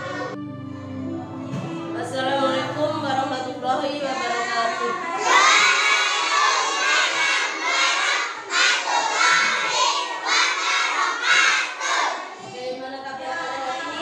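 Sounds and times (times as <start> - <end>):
children shouting together: 4.5 - 12.4.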